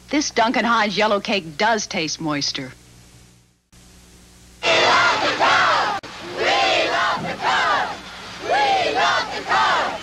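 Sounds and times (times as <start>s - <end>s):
chorus of voices chanting: 4.6s - 10.0s.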